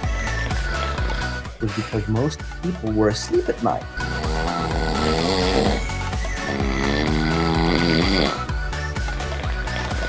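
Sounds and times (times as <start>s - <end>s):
man snoring: 0.0s - 2.1s, 3.8s - 10.0s
background music: 0.0s - 10.0s.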